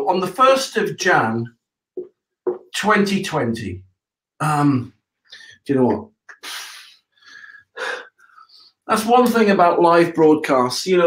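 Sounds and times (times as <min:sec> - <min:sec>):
man breathing: 0:05.3 - 0:05.7, 0:06.3 - 0:08.9.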